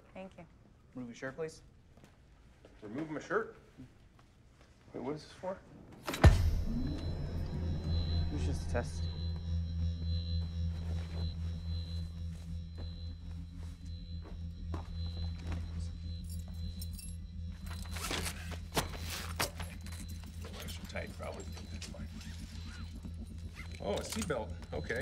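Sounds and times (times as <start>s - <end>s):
low droning film score: 4.4s - 25.0s
faint high tone: 6.2s - 25.0s.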